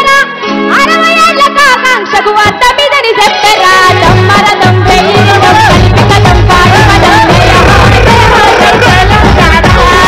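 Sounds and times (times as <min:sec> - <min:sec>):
woman singing into a microphone: 0:00.0 - 0:10.0
rhythmic percussion: 0:04.0 - 0:10.0.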